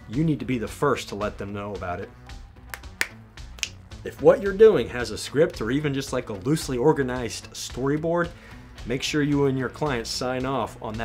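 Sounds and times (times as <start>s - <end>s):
finger snap: 2.3s - 3.9s.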